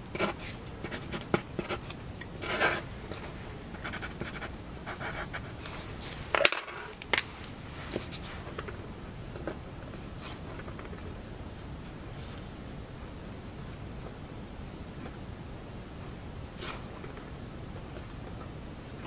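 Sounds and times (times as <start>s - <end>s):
pencil scratching on paper: 0.1s - 2.9s, 3.8s - 5.6s.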